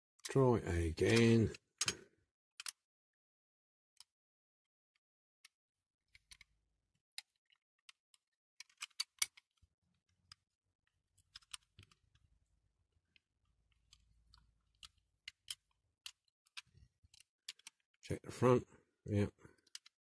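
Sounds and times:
toy car parts clicking: 0:02.6 - 0:02.8, 0:06.1 - 0:12.3, 0:13.1 - 0:18.0, 0:19.5 - 0:20.0.

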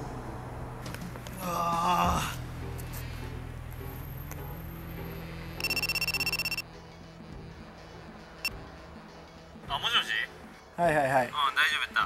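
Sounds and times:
low background music: 0:00.0 - 0:12.0
phone ringing electronic trill: 0:05.6 - 0:06.6
short phone beep: 0:05.6 - 0:06.6.

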